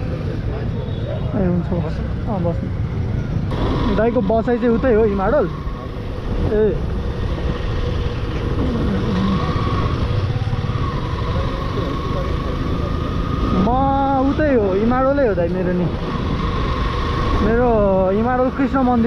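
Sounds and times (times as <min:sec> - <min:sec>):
motorcycle engine rumble: 0:00.0 - 0:19.0
road and wind noise: 0:00.0 - 0:19.0.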